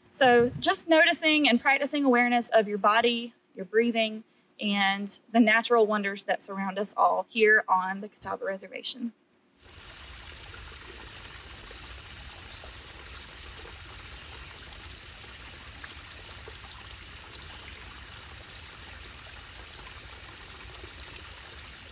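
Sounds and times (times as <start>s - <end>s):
creek trickling: 9.6s - 21.9s.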